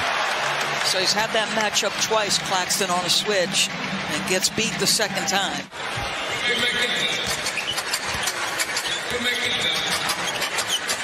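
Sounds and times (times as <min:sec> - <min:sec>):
arena crowd noise: 0:00.0 - 0:11.0
basketball dribbling: 0:06.9 - 0:11.0
sneaker squeaks on hardwood: 0:07.2 - 0:11.0.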